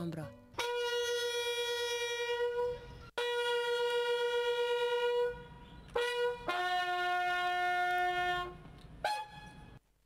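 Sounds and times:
brass instrument long notes: 0.5 - 9.8.

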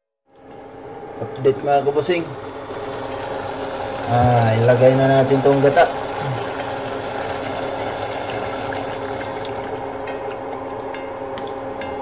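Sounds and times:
liquid pouring into a pot: 2.4 - 11.7.

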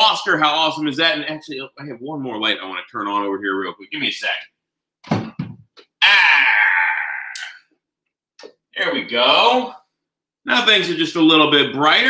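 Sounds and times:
man sighing: 6.0 - 7.7.

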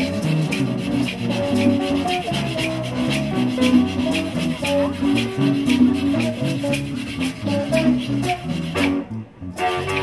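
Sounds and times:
hand drums: 0.0 - 9.1
shaker beat: 0.0 - 10.0
strummed ukulele: 0.0 - 10.0.

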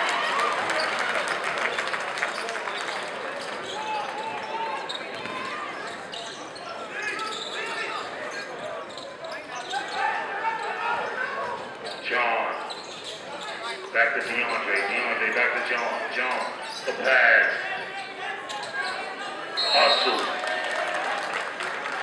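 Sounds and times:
crowd voices and shouts: 0.0 - 22.0
crowd outburst: 19.6 - 22.0.

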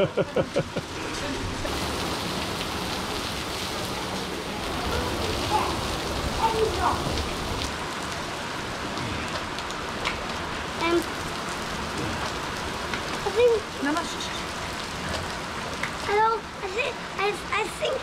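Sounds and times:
heavy rain on pavement: 0.0 - 18.0.

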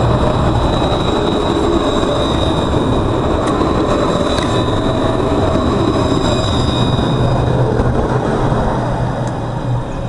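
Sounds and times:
tram running past: 0.0 - 10.0.

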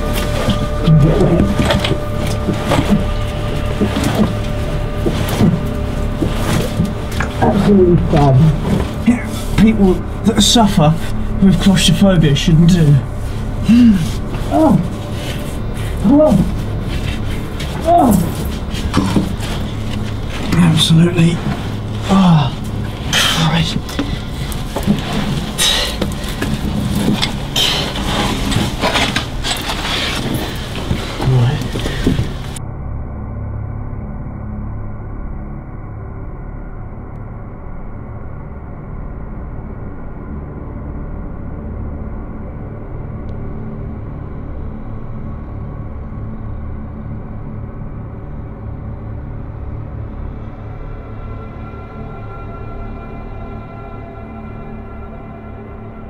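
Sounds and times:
scraping and rustling of crawling: 0.0 - 11.2, 12.7 - 32.6
ambient music with held tones: 0.0 - 56.0.

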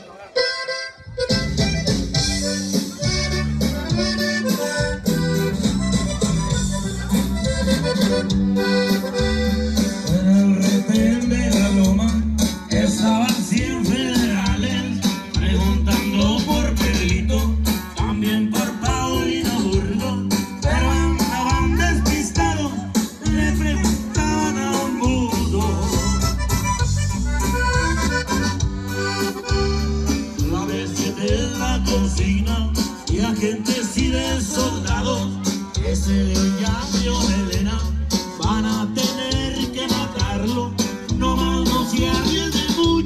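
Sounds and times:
accordion: 0.0 - 43.0
live band playing: 0.0 - 43.0
heavy bass line: 1.0 - 43.0.

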